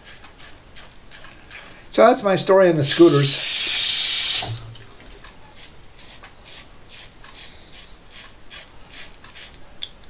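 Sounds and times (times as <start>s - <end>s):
razor scraping whiskers: 5.6s - 9.6s.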